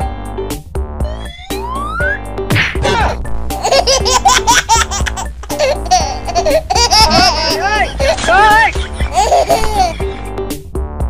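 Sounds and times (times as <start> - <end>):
music with low beat: 0.0 - 11.0
rapid high-pitched laughter: 3.6 - 10.2.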